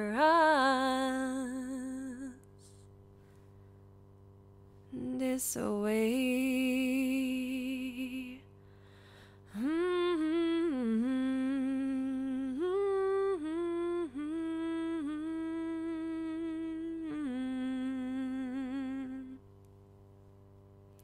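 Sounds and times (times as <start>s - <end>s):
person humming a melody: 0.0s - 2.8s, 4.9s - 8.4s, 9.5s - 19.4s.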